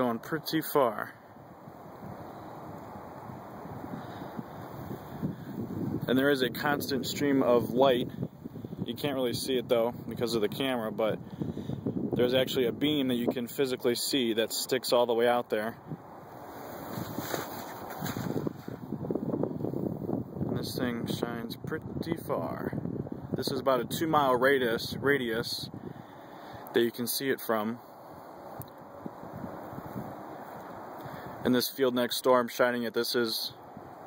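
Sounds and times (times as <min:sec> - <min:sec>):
wind on microphone: 0:01.4 - 0:13.5, 0:15.6 - 0:26.7, 0:28.0 - 0:31.5.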